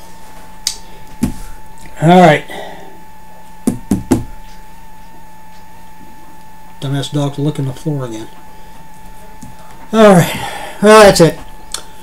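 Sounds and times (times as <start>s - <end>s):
faint electrical hum: 0.0s - 12.0s
sharp knocks: 3.6s - 4.4s.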